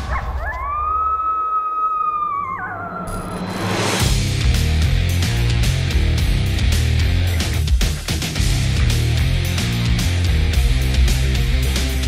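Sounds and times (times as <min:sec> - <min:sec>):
coyote howling: 0:00.0 - 0:03.4.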